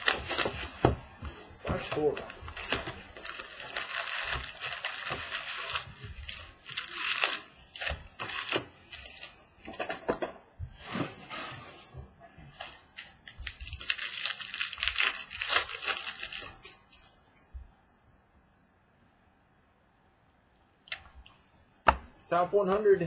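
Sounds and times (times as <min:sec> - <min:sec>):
packs crinkling and tearing: 0:00.0 - 0:10.0, 0:12.5 - 0:17.2.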